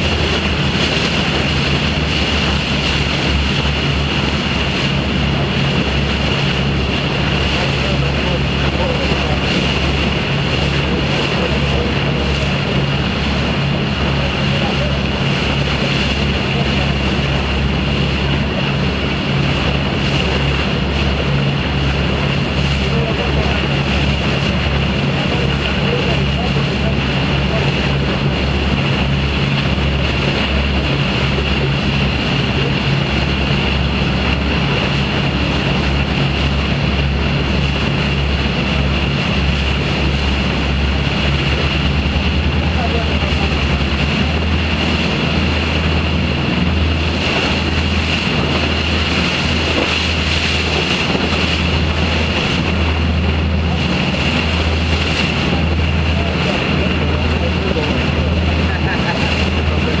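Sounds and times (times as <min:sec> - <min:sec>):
boat engines droning: 0:00.0 - 1:00.0
water rushing past hull: 0:00.0 - 1:00.0.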